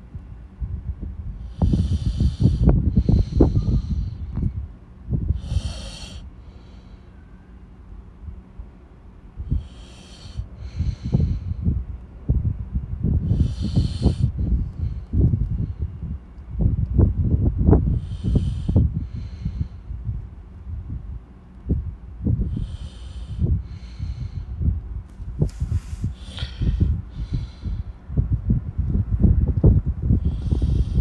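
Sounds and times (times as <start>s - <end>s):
low rumble of mic handling: 0.0s - 5.7s, 10.4s - 22.7s, 23.4s - 31.0s
breathing close to microphone: 1.3s - 7.7s, 9.3s - 11.9s, 13.1s - 16.3s, 17.6s - 20.3s, 22.2s - 31.0s
short hissy bursts: 25.4s - 26.4s.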